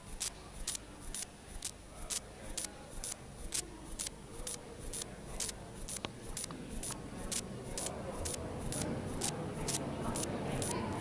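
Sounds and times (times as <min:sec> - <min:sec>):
crowd murmur: 0:00.0 - 0:11.0
hissy ticks: 0:00.0 - 0:11.0.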